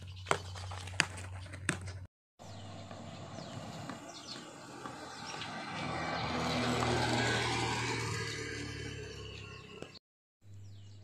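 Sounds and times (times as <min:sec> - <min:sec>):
motorbike passing: 0:02.4 - 0:10.0.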